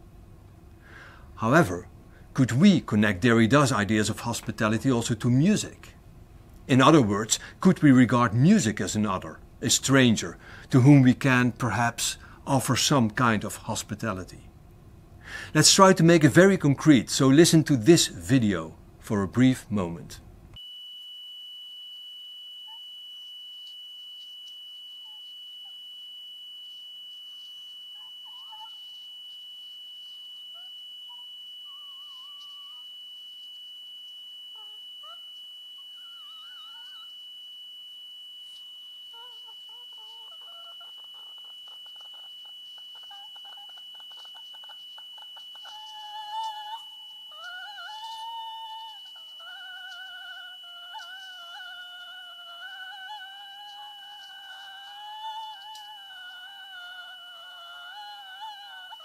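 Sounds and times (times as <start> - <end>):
constant high tone: 0.0 - 59.0.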